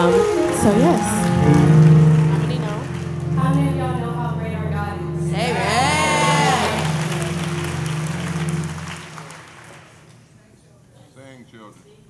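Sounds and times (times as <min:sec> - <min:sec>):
congregation applauding: 0:00.0 - 0:03.7, 0:05.4 - 0:10.4
held low instrumental chord: 0:00.0 - 0:09.8.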